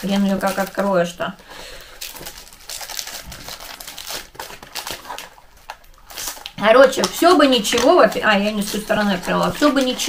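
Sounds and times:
cellophane crinkling and tearing: 0:00.0 - 0:10.0.

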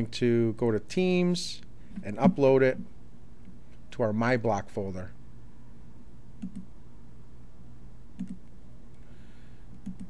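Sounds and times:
steady low hum: 0:00.0 - 0:10.0
computer mouse clicking: 0:06.4 - 0:06.7, 0:08.2 - 0:08.5, 0:09.7 - 0:10.0.

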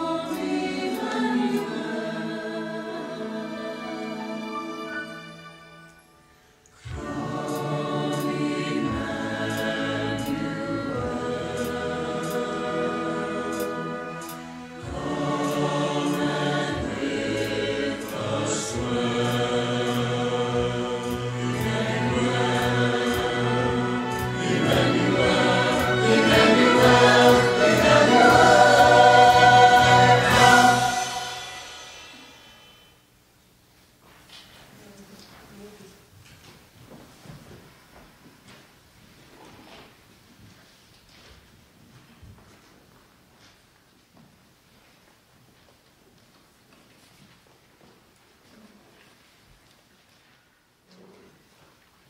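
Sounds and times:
church choir singing: 0:00.0 - 0:32.6.

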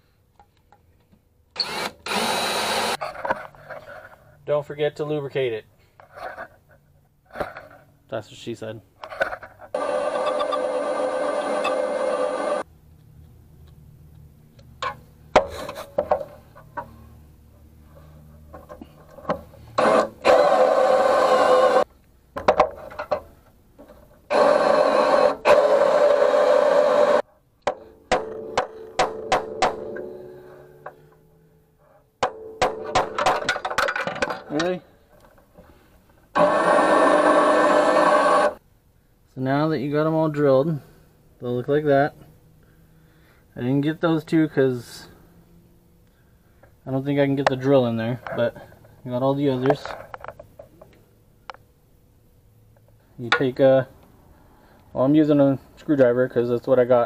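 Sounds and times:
drill boring through sheet metal: 0:01.6 - 0:03.0, 0:09.8 - 0:12.6, 0:19.8 - 0:21.8, 0:24.3 - 0:27.2, 0:36.4 - 0:38.6.

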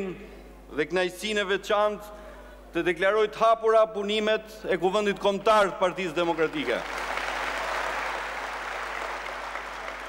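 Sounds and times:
large audience applauding: 0:06.3 - 0:10.0.

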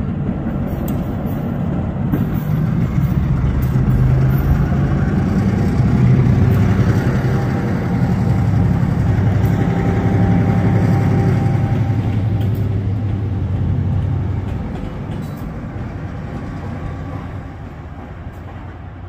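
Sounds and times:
diesel locomotive engine running: 0:00.0 - 0:19.0.

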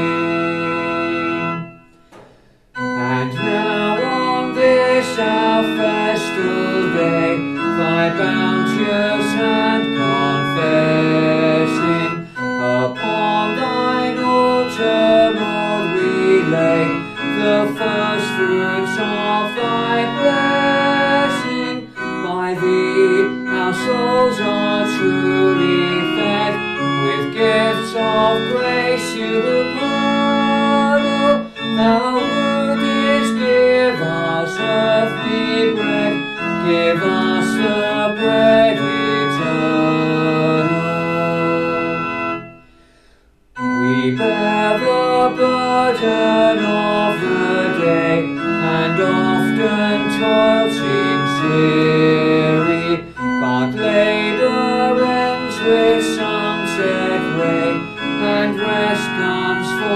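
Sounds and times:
organ playing hymn chords: 0:00.0 - 0:59.9.

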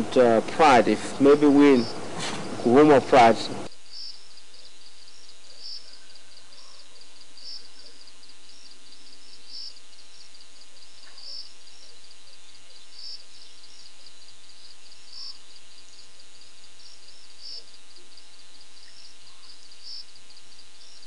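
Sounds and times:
night insects chirping: 0:00.0 - 0:21.0.

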